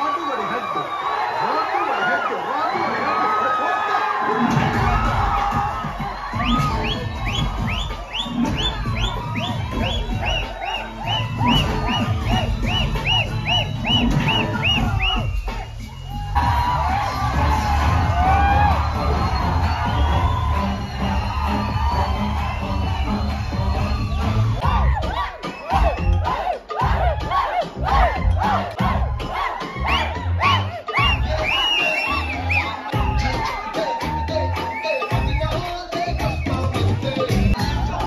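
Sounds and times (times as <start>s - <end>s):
crowd cheering and shouting: 0.0s - 38.0s
film song over speakers: 4.5s - 38.0s.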